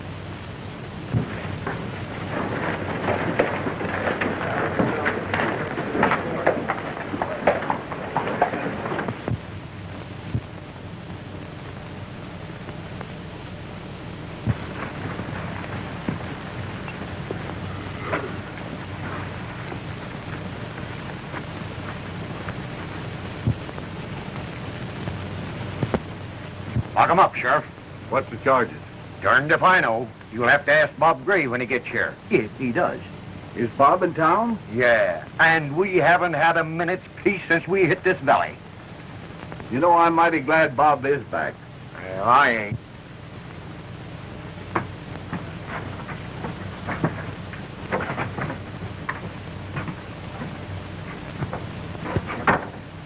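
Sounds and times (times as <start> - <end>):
film soundtrack hiss and hum: 0.0 - 53.0.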